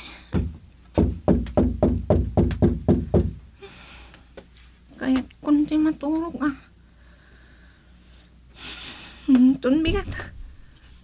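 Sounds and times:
rapid hard knocks with low ring: 0:00.4 - 0:03.4.

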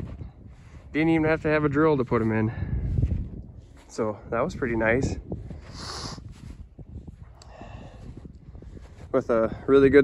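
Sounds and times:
footsteps crunching through snow: 0:00.0 - 0:09.5
wind rumble on microphone: 0:00.0 - 0:10.0.

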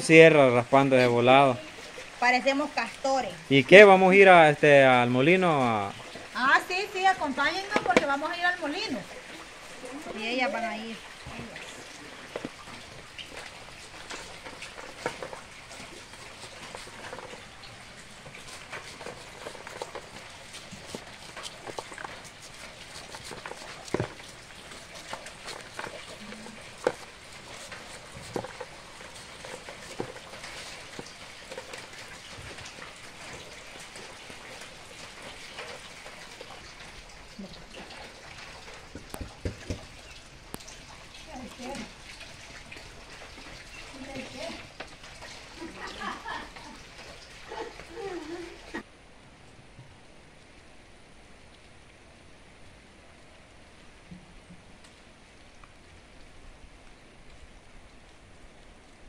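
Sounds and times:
kernels falling into plastic basins: 0:07.3 - 0:09.2.

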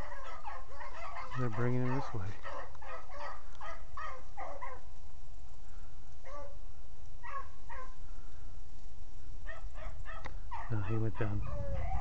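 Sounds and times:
beagles baying: 0:00.0 - 0:04.9, 0:06.2 - 0:08.1, 0:09.4 - 0:12.0.

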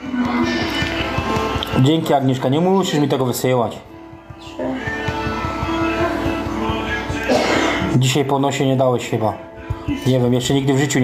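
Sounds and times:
music with quick steady beat: 0:00.0 - 0:11.0.

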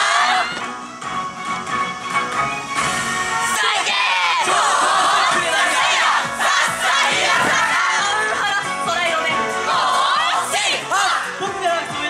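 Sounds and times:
crowd shouting together: 0:00.0 - 0:00.6, 0:03.4 - 0:08.2, 0:09.6 - 0:11.4
backing music bass: 0:04.4 - 0:12.0.

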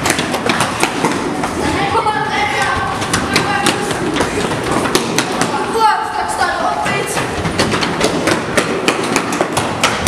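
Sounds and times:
children running footsteps: 0:00.0 - 0:10.0.

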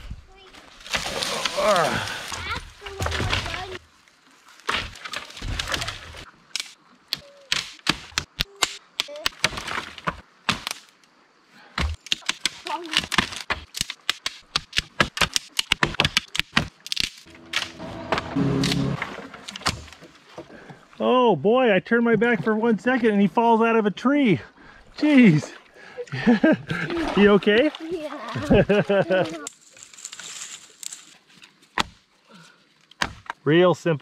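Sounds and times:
dry sticks snapping: 0:06.5 - 0:10.9, 0:12.0 - 0:17.8.

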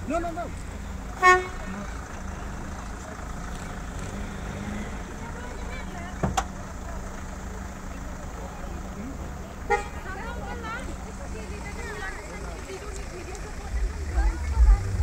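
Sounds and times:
vehicle engines idling: 0:00.0 - 0:15.0
car horn toot: 0:01.2 - 0:01.8, 0:09.6 - 0:10.2.

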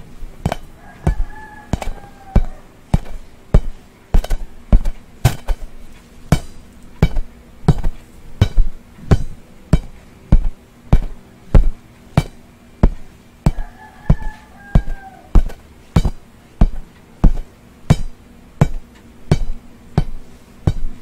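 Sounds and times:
pencil tapping bouncy ball: 0:00.4 - 0:05.7, 0:06.3 - 0:21.0.

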